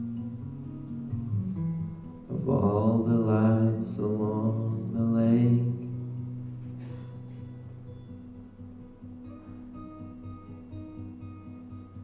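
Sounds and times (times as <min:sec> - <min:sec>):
acoustic guitar playing: 0:00.0 - 0:12.0
man singing long notes: 0:02.3 - 0:06.2.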